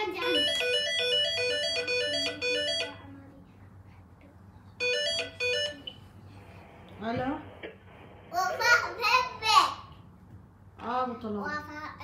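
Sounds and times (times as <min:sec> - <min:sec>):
electronic ringtone melody: 0:00.2 - 0:03.0, 0:04.8 - 0:06.0.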